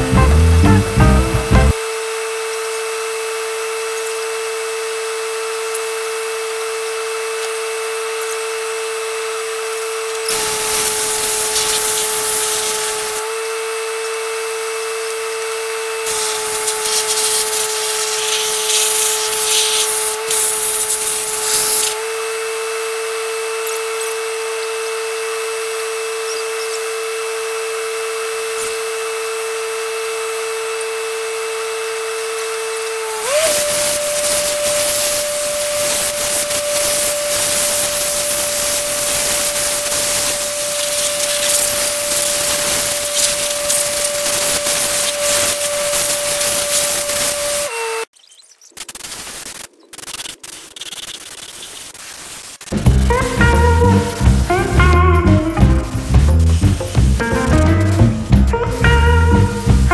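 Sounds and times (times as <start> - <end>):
air compressor whining: 5.4 - 48.1, 52.7 - 59.9
air hose blasting hiss: 10.3 - 13.2, 16.1 - 22.0, 33.0 - 47.7.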